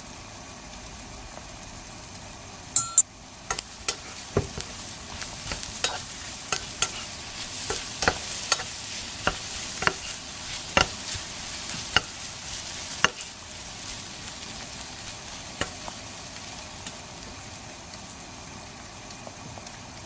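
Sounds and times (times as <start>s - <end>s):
food sizzling in a pan: 0.0s - 20.0s
metallic clinks: 2.8s - 3.0s
steady hum: 2.8s - 17.2s.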